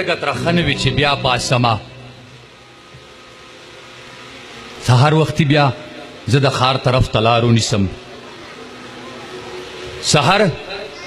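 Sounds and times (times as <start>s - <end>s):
steady background hiss: 0.0s - 11.0s
faint low hum: 0.2s - 6.5s.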